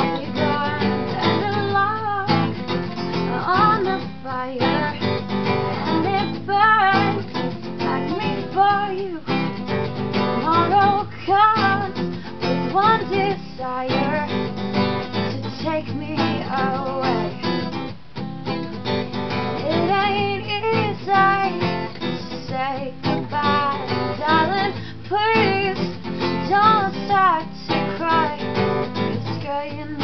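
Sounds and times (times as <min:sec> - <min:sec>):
woman singing: 0:00.0 - 0:17.8, 0:19.5 - 0:30.0
strummed acoustic guitar: 0:00.0 - 0:30.0.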